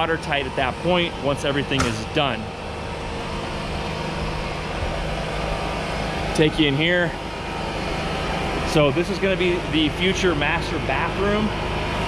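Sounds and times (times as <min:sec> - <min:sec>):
low hum with rumble: 0:00.0 - 0:12.0.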